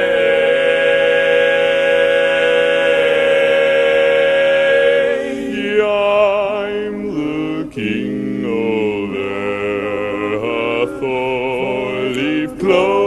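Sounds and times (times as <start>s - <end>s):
male quartet singing a cappella: 0.0s - 13.0s.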